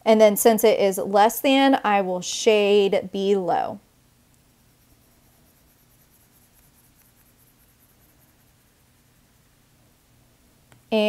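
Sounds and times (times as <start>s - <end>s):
stylus scratching on tablet screen: 4.5s - 9.4s.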